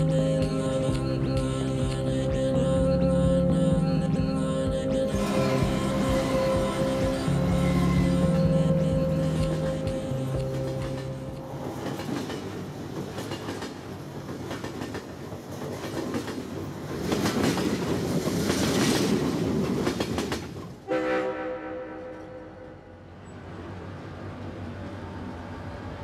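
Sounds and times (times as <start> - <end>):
steady pitched tone: 2.5 - 11.5
train passing close by: 3.5 - 26.0.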